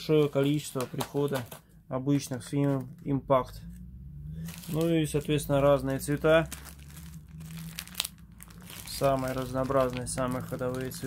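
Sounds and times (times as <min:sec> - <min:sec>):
plastic packets crinkling: 0:00.0 - 0:01.6, 0:02.2 - 0:03.2, 0:04.4 - 0:11.0
sharp plastic crackle: 0:00.0 - 0:03.2, 0:04.4 - 0:11.0.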